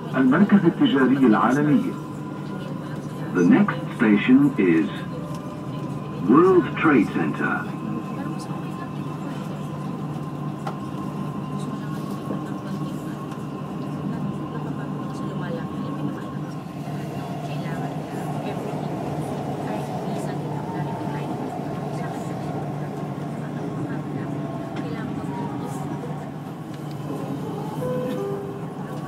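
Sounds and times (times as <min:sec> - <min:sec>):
murmur of passenger voices: 0:00.0 - 0:29.0
train rumbling and humming: 0:00.0 - 0:29.0.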